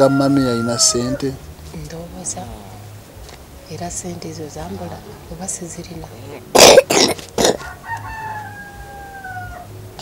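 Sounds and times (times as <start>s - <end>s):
rooster crowing: 0.0s - 1.4s, 7.5s - 9.8s
person coughing: 6.6s - 7.6s.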